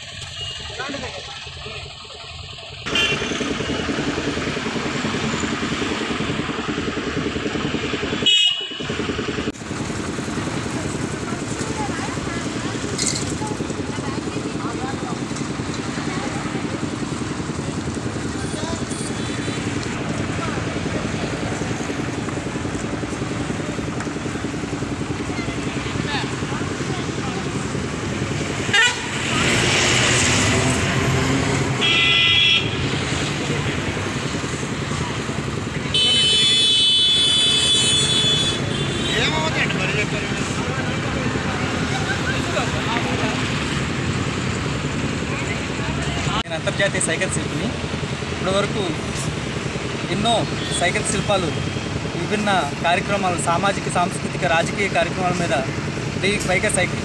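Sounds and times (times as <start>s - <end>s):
motorcycle engines passing: 0.0s - 57.0s
roadside traffic: 0.0s - 57.0s.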